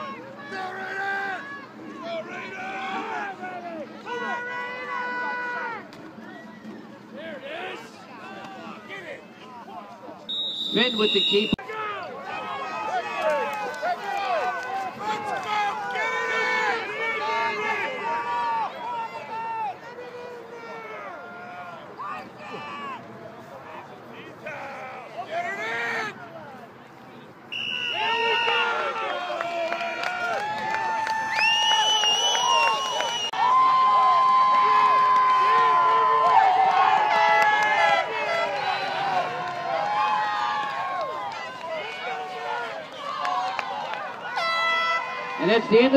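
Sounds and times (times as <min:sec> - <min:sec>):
crowd shouting and cheering: 0:00.0 - 0:45.9.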